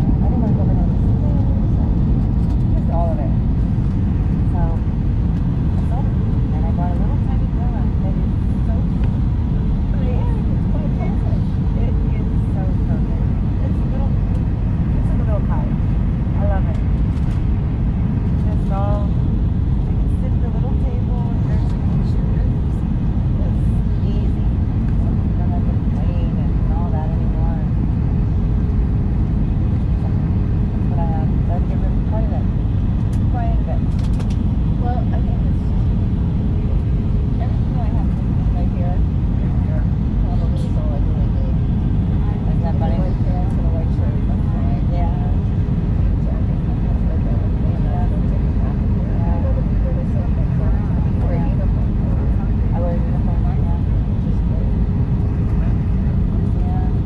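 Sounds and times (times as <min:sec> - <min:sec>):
airliner cabin rumble: 0:00.0 - 0:57.0.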